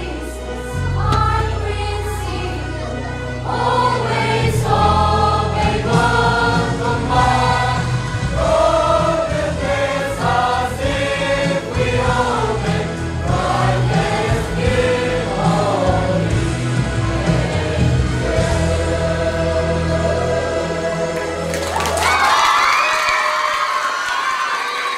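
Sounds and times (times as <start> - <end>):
children's choir singing: 0.0 - 22.2.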